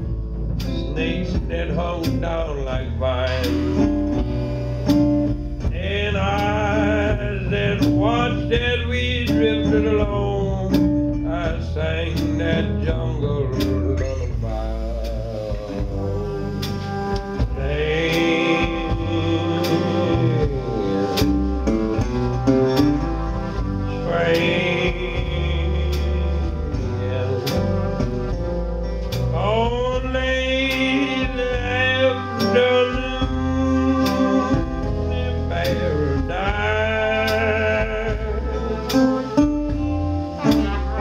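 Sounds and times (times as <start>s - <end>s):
drums: 0.0s - 41.0s
guitar: 0.0s - 41.0s
trombone: 0.0s - 41.0s
trumpet: 0.0s - 41.0s
upright bass: 0.0s - 41.0s.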